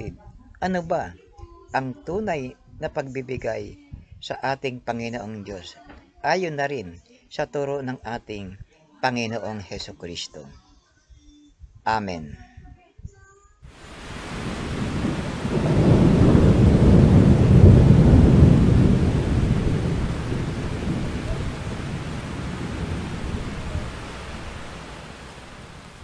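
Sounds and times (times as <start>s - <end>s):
rolling thunder: 13.8s - 26.0s.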